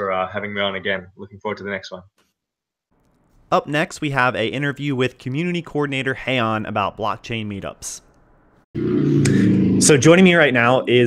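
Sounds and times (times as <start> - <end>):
man speaking: 3.5 - 8.1.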